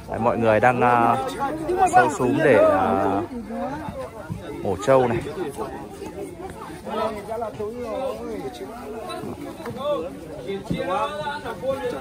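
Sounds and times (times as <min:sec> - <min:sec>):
overlapping chatter: 0:00.0 - 0:12.0.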